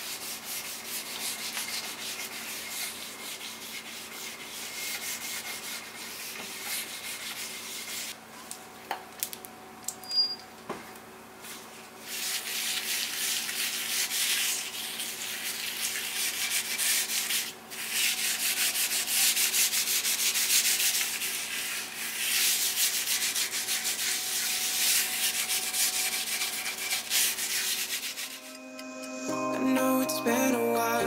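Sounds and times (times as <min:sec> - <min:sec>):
cloth rubbing wooden board: 0:20.8 - 0:28.4
music: 0:28.0 - 0:31.0.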